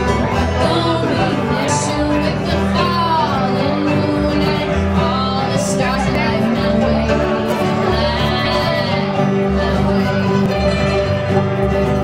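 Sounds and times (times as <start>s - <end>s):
woman singing: 0.0s - 11.6s
strummed acoustic guitar: 0.0s - 12.0s
upright bass: 0.0s - 12.0s.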